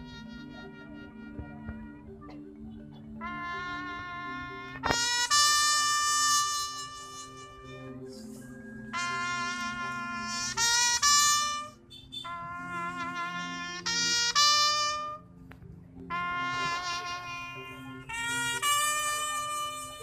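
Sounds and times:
brass horn playing slow salute: 0:03.2 - 0:07.7, 0:08.9 - 0:15.2, 0:16.1 - 0:20.0.

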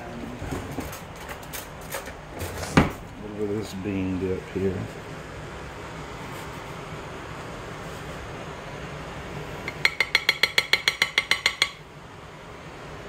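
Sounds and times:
low room hum: 0:00.0 - 0:13.0
spoon tapping ceramic dish: 0:09.7 - 0:11.8.

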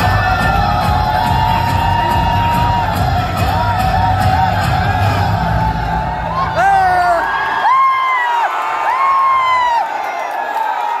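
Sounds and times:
dance music: 0:00.0 - 0:08.0
audience cheering: 0:00.0 - 0:11.0.

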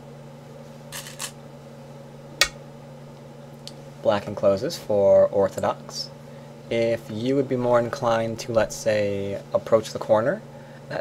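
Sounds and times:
low steady hum: 0:00.0 - 0:11.0
rattle of stones in bowl: 0:01.0 - 0:01.4.

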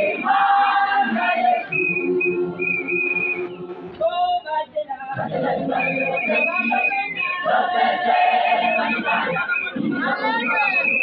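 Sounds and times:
high whistle blasts: 0:01.6 - 0:03.9, 0:05.7 - 0:07.6, 0:10.4 - 0:11.0.

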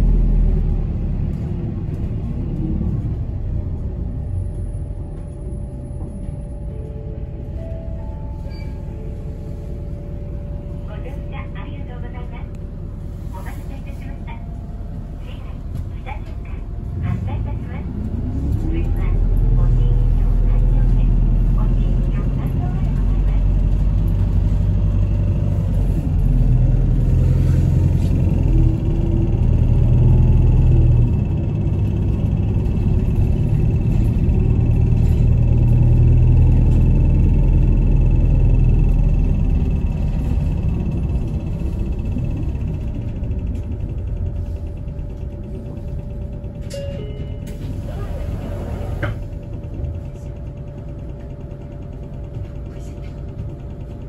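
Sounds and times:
bus engine and road rumble: 0:00.0 - 0:54.0.

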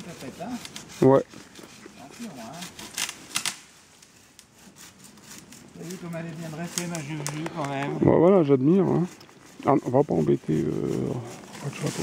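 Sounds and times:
twigs snapping and rustling: 0:02.8 - 0:04.5, 0:05.3 - 0:08.0.

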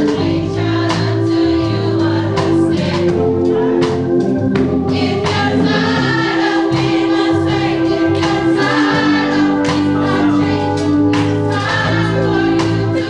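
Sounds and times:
church choir singing gospel: 0:00.0 - 0:13.0.

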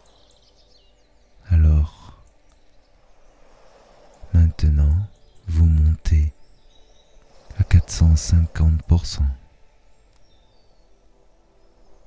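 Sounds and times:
birdsong chirps: 0:00.0 - 0:12.0
sea waves: 0:00.0 - 0:12.0.

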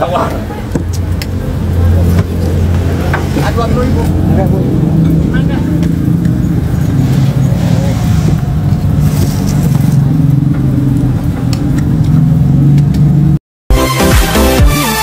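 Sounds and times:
people talking: 0:00.0 - 0:02.3, 0:03.0 - 0:06.0, 0:07.0 - 0:08.4
vehicle engine running: 0:00.4 - 0:13.4.

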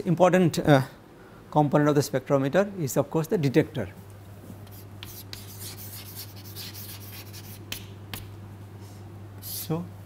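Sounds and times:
steady low hum: 0:00.0 - 0:10.0
chalk scratching on blackboard: 0:04.6 - 0:08.3
chalk tap: 0:04.7 - 0:08.3.

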